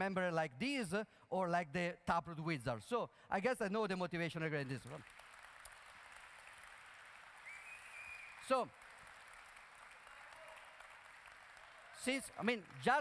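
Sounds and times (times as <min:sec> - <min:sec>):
faint audience applause: 0:04.6 - 0:13.0.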